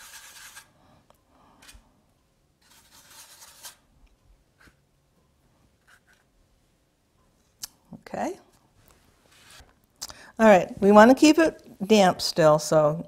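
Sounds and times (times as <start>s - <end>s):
paintbrush rubbing on paper: 2.6s - 3.8s.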